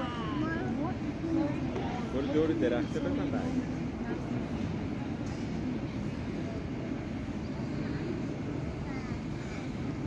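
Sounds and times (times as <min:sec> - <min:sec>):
faint talk of people: 0:00.0 - 0:10.0.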